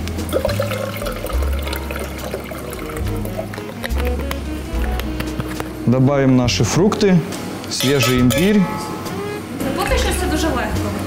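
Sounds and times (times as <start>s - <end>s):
juice pouring into steel pitcher: 0.0s - 4.5s
background music with bass line: 0.0s - 11.0s.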